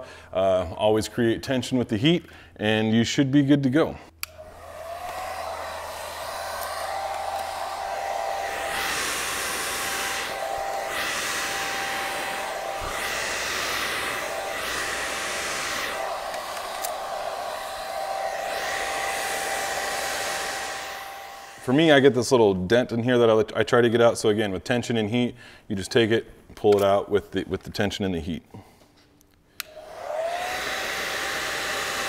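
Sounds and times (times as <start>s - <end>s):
hair dryer blowing: 4.2s - 22.2s, 29.6s - 32.0s.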